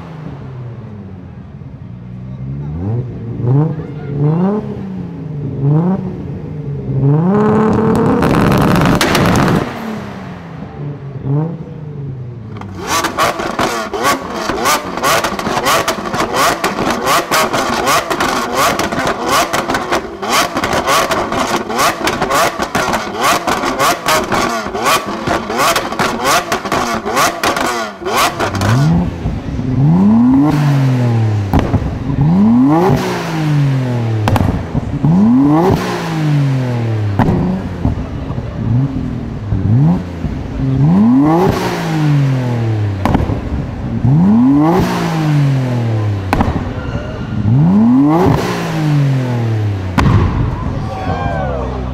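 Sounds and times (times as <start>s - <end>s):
car engine revving with exhaust pops: 2.1s - 50.8s.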